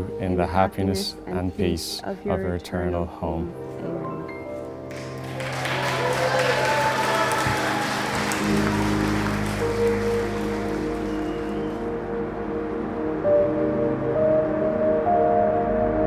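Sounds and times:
slow background music: 0.0s - 16.0s
congregation applauding: 4.9s - 12.1s.

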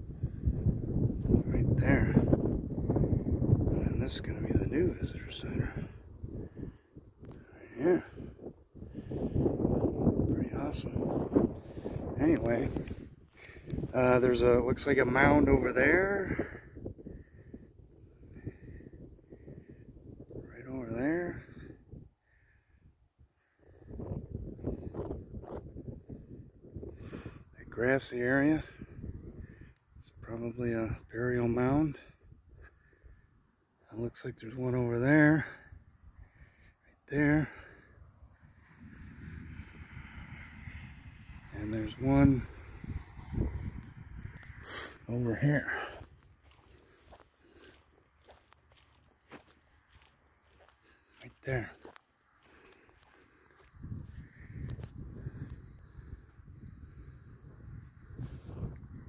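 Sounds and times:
wind buffeting microphone: 0.0s - 33.2s, 35.7s - 59.0s.

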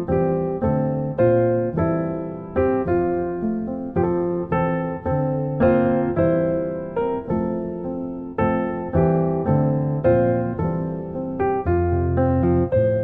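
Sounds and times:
slow gentle piano piece: 0.0s - 13.0s.

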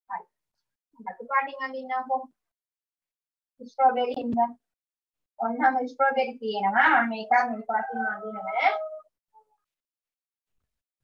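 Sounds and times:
high-pitched voice speaking: 6.8s - 9.1s.

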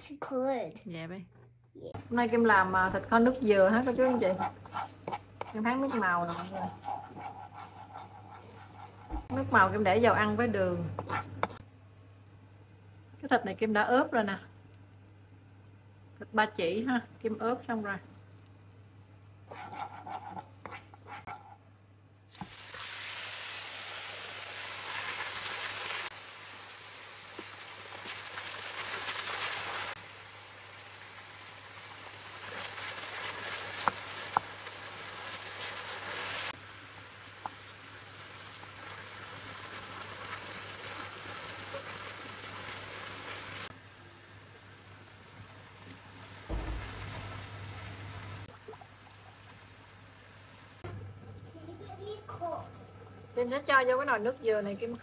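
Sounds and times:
wooden spoon knocking on pan: 7.2s - 9.4s, 46.5s - 48.3s
meat sizzling in a pan: 22.3s - 50.8s.

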